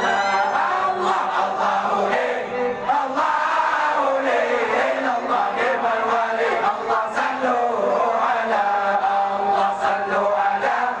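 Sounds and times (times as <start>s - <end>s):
group of men chanting: 0.0s - 11.0s.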